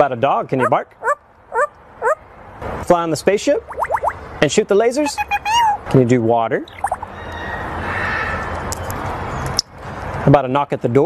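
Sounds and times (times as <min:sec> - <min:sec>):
parrot imitating running water: 0:03.7 - 0:04.2.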